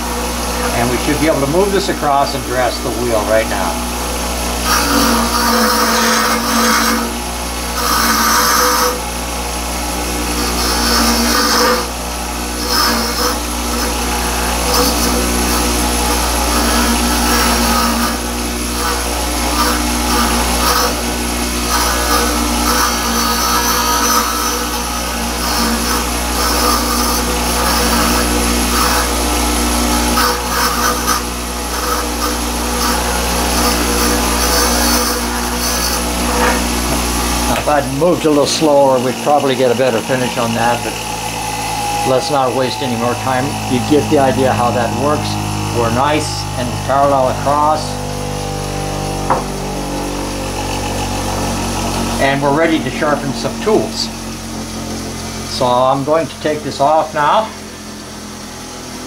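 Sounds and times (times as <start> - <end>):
gritty scraping on grinding wheel: 0.0 - 57.9
grinder motor hum: 0.0 - 59.0.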